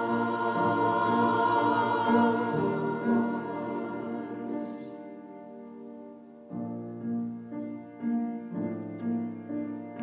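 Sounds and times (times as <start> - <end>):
choir singing: 0.0 - 5.4.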